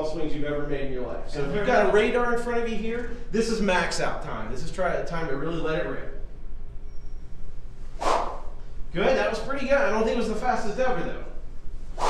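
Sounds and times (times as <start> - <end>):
golf club swishing through air: 7.8 - 8.7, 11.8 - 12.0.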